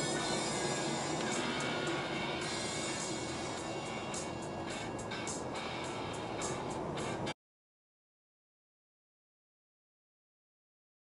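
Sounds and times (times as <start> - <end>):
music on car radio: 0.0 - 7.4
road and engine noise: 0.0 - 7.4.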